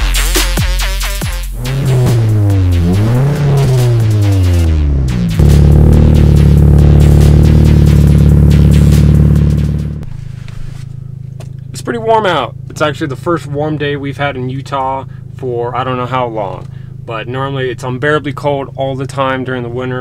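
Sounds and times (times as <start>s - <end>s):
car engine revving: 1.4s - 17.1s.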